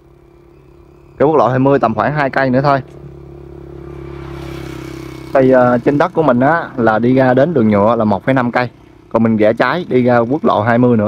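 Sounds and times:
small motorbike engine passing: 0.0 - 11.0.

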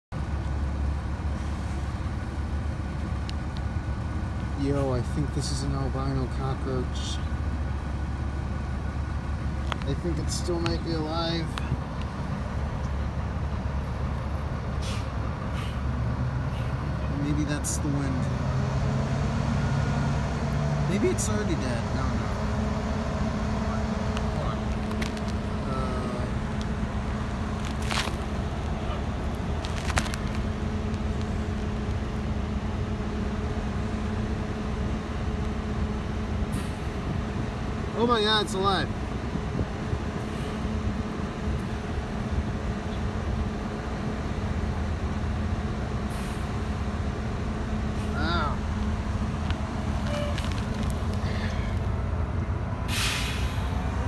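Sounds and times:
low outdoor rumble: 0.1 - 54.0.

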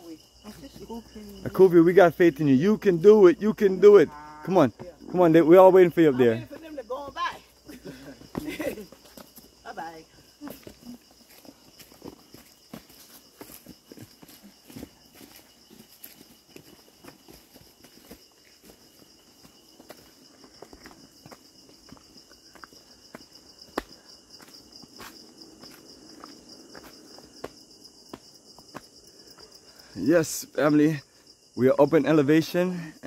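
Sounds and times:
footsteps on stone path: 6.2 - 29.6.

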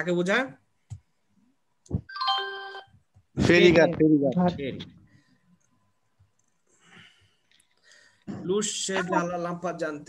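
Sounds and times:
electronic chime: 2.1 - 2.9.

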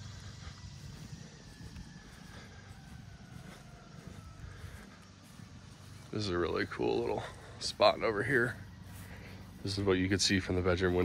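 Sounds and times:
distant engine rumble and whine: 0.0 - 11.0.

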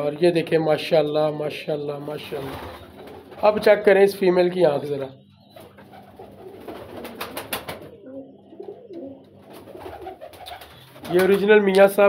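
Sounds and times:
pigeons cooing: 2.1 - 3.6, 4.8 - 11.5.

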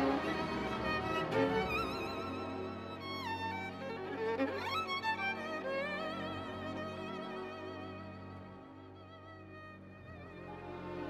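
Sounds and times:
bowed string melody: 0.0 - 11.0.

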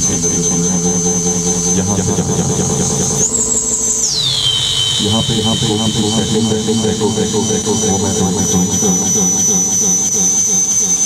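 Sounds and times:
low hum: 0.0 - 11.0
high-pitched feedback whistle: 2.8 - 5.0.

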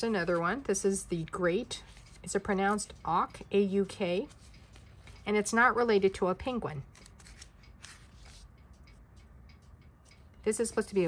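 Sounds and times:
diary page being turned: 1.9 - 2.9, 4.3 - 5.2, 6.9 - 8.5.

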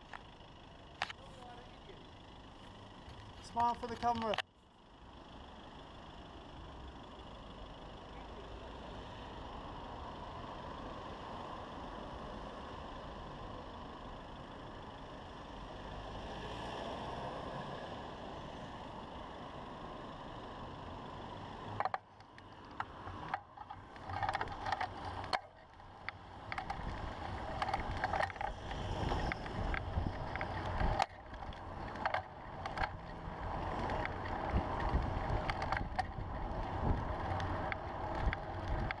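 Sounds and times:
city street traffic hum: 0.0 - 39.0
road noise: 0.0 - 39.0
bicycle knocks and rattles: 21.8 - 39.0.

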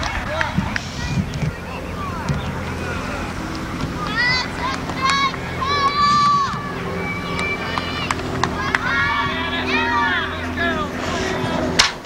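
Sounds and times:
distant voices calling: 0.0 - 12.0
wind buffeting microphone: 0.0 - 12.0.

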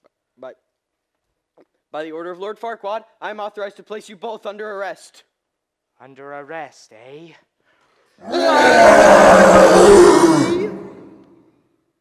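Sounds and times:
man roaring: 8.2 - 11.3.

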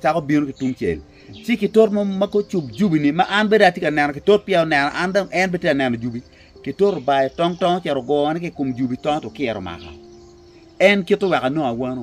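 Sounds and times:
man talking: 0.0 - 10.0, 10.8 - 12.0
insects chirping: 0.0 - 12.0.

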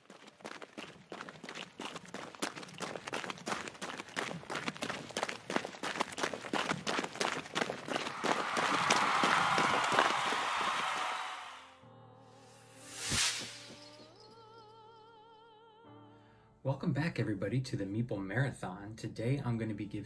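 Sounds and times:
running footsteps: 0.0 - 11.6.

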